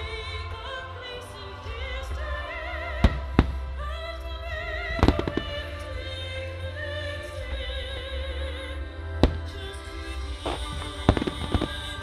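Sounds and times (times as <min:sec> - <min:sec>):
music playing: 0:00.0 - 0:12.0
firework shells bursting: 0:10.4 - 0:12.0.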